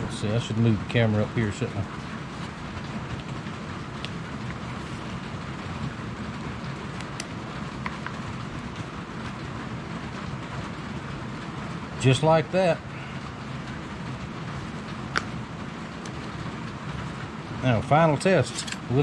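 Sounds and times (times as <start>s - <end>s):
rain on a roof: 0.0s - 19.0s.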